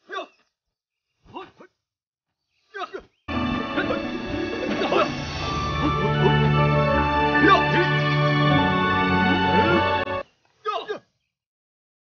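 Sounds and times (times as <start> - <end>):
background music: 3.3 - 10.2.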